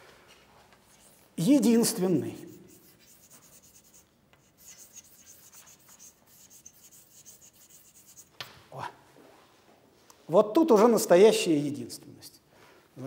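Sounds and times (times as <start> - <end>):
chalk scratching on blackboard: 2.1 - 8.4.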